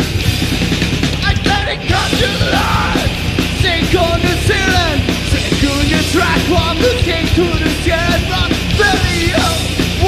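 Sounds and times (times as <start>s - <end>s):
metalcore band playing: 0.0s - 10.0s.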